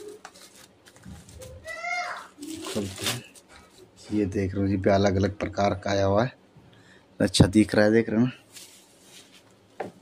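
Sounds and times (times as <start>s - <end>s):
bubble wrap crinkling: 0.0s - 3.6s, 8.5s - 9.6s.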